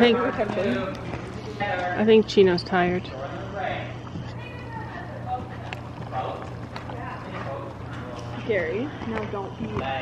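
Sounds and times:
faint indistinct voices: 0:00.0 - 0:10.0
steady low hum: 0:00.0 - 0:10.0.

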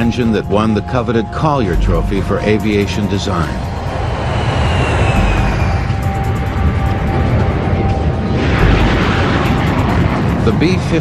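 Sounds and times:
documentary background music: 0:00.0 - 0:11.0
jet engines during takeoff: 0:02.6 - 0:11.0.

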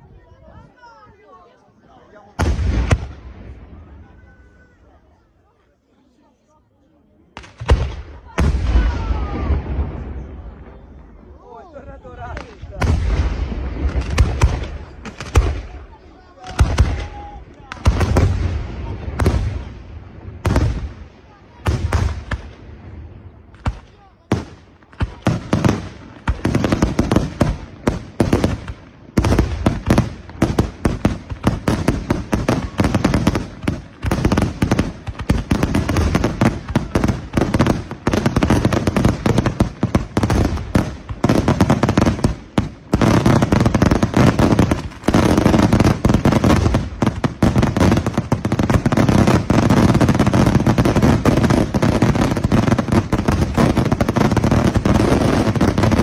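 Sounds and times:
fireworks bursting and crackling: 0:00.0 - 0:05.2, 0:07.2 - 0:56.0.

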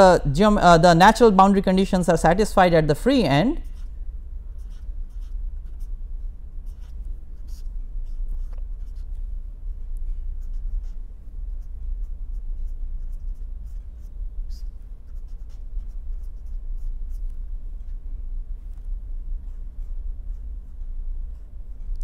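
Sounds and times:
steady low hum: 0:00.0 - 0:22.0
marker writing on paper: 0:03.5 - 0:04.0, 0:04.6 - 0:06.0, 0:06.6 - 0:18.0.

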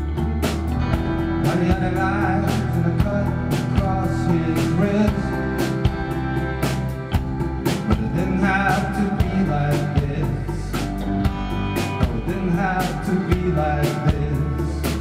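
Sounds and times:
accordion: 0:00.0 - 0:15.0
drum kit beat: 0:00.0 - 0:15.0
guitars: 0:00.0 - 0:15.0.

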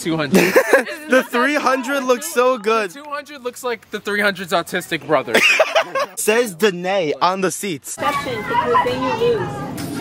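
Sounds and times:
young people talking and calling: 0:00.0 - 0:10.0
person laughing: 0:00.3 - 0:01.2, 0:05.4 - 0:06.2.

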